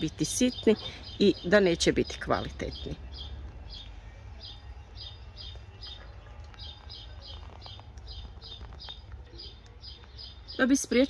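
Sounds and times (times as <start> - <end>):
small bird chirping: 0.0 - 11.0.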